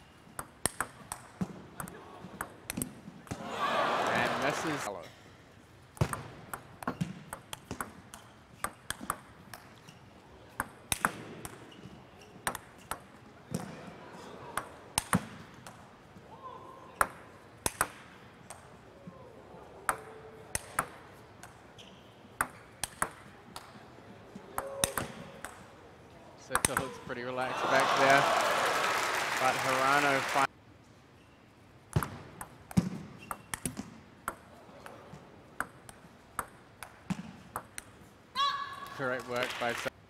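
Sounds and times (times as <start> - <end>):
table tennis ball clicking: 0.4 - 2.9, 35.6 - 37.0.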